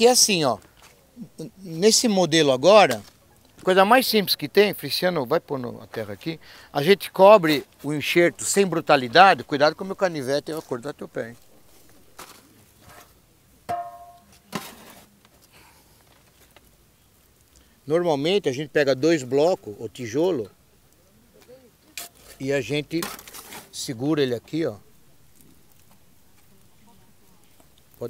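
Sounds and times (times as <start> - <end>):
soil rustling: 0.0 - 28.0
shovel knock ringing: 13.7 - 14.3
shovel thud: 13.7 - 14.8.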